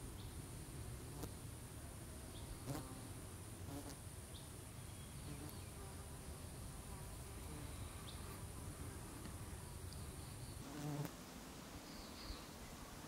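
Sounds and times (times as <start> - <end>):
flying insects buzzing: 2.4 - 13.0.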